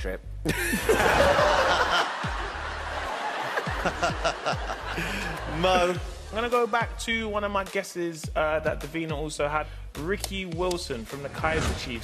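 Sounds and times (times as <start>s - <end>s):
low pulsing music: 0.0s - 12.0s
studio audience laughing: 0.5s - 6.1s.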